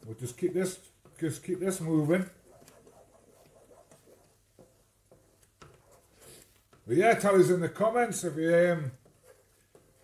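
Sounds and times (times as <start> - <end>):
wooden spoon scraping saucepan: 0.9 - 6.9.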